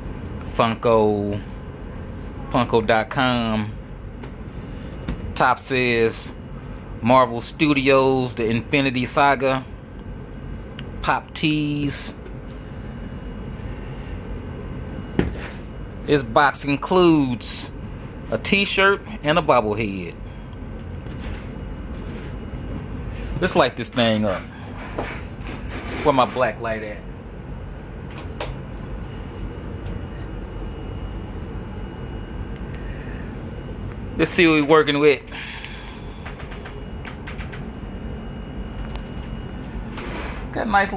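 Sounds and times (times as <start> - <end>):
low room rumble: 0.0 - 40.9.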